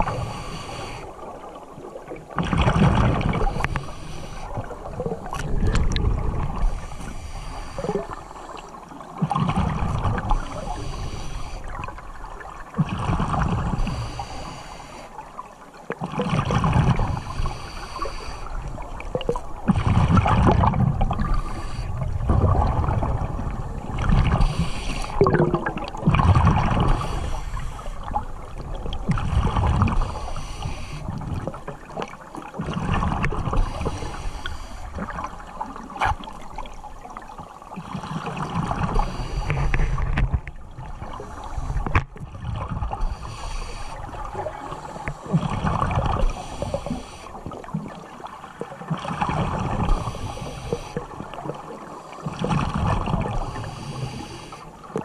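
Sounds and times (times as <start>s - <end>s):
exhaled bubbles underwater: 0.0s - 55.0s
regulator breathing: 6.7s - 8.5s, 24.4s - 25.2s.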